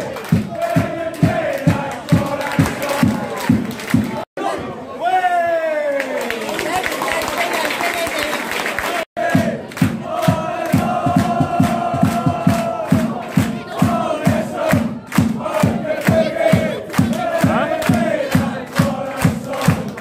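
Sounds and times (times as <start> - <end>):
rhythmic handclaps: 0.0 - 4.3, 6.2 - 20.0
supporters singing chant in unison: 0.0 - 4.3, 8.8 - 20.0.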